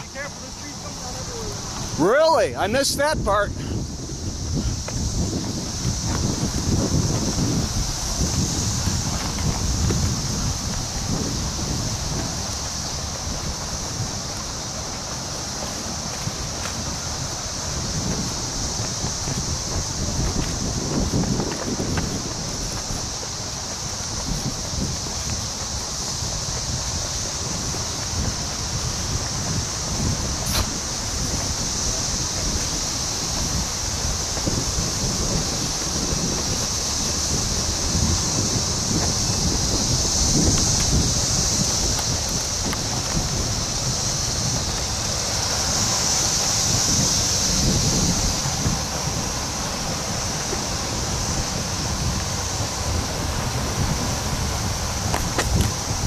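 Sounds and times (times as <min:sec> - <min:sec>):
steady high-pitched hiss: 0:00.0 - 0:56.0
wind rumbling on microphone: 0:00.0 - 0:56.0.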